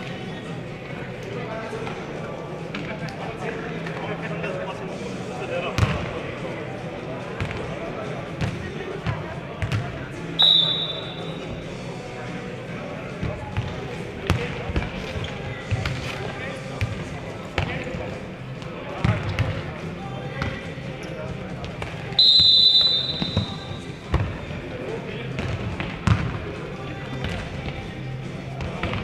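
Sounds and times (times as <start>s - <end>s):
voices in a hall: 0.0s - 29.0s
referee's whistle: 10.4s - 11.6s, 22.2s - 23.9s.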